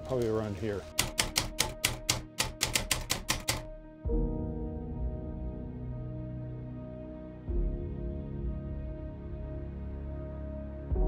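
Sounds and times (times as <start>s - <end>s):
typewriter keys clacking: 0.0s - 3.7s
low sustained music chord: 3.7s - 11.0s.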